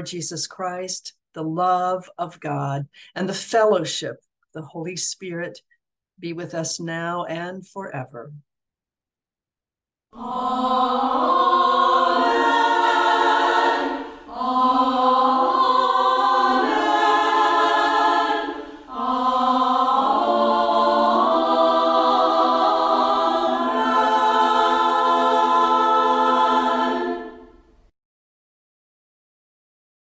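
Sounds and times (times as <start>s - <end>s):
choir singing held chords: 10.2s - 27.9s.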